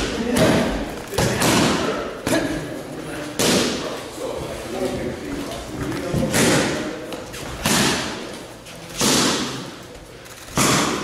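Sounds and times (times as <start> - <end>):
boxing gloves punching mitts: 6.0 - 11.0.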